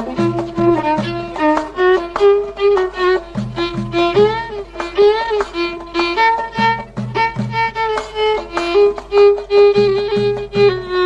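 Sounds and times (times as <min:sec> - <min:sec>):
deep drum strokes: 0:00.0 - 0:11.0
violin improvised solo: 0:00.0 - 0:11.0.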